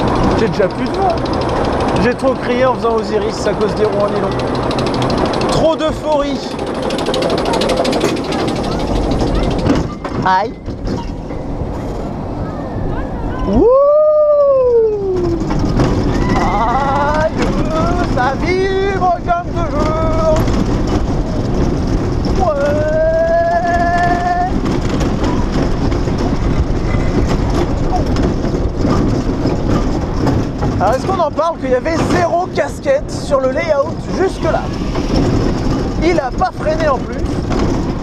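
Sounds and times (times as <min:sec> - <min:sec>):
rush of wind and wheels: 0:00.0 - 0:38.0
riders yelling and whooping: 0:12.4 - 0:20.5, 0:22.3 - 0:25.6.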